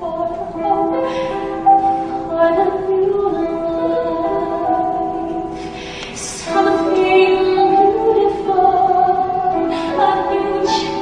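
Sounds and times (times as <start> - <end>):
soft steady accompaniment: 0.0 - 11.0
woman singing a slow ballad: 0.0 - 11.0.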